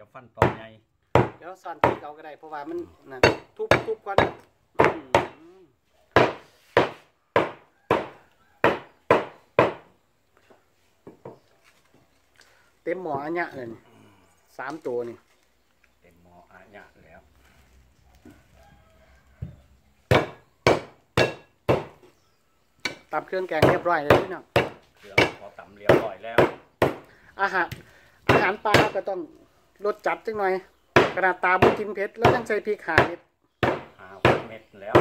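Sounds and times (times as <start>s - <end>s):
knife chopping on wooden block: 1.2s - 2.0s, 3.2s - 5.4s, 6.2s - 9.9s, 20.1s - 22.1s, 22.8s - 27.1s, 31.0s - 35.0s.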